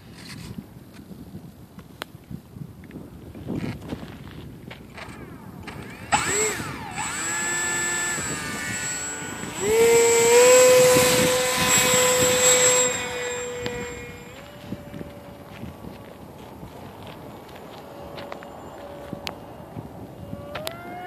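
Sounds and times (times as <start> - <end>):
electric model plane motor whining: 4.8 - 21.0.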